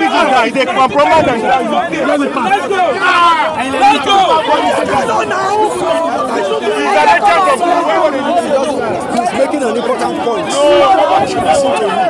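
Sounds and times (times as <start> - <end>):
crowd chatter: 0.0 - 12.0
men talking over one another: 0.0 - 12.0.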